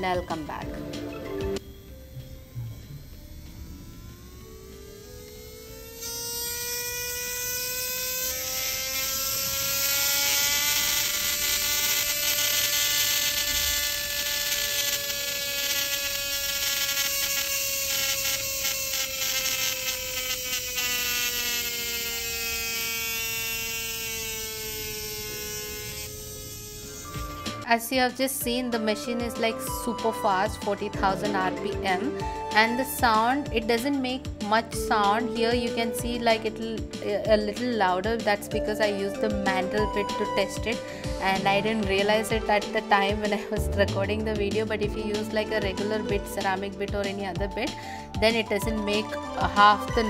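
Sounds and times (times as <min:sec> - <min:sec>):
electric nail file whining: 0:00.0 - 0:50.0.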